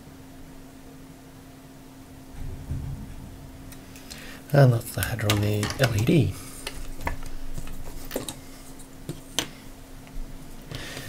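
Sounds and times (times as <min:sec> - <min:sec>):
faint steady hum: 0:00.0 - 0:11.0
light clicks and knocks: 0:05.0 - 0:08.4.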